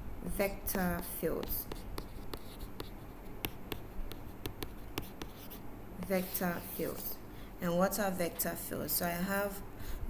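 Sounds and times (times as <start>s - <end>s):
stylus tapping on tablet: 0.7s - 5.6s
stylus scratching: 0.7s - 7.1s.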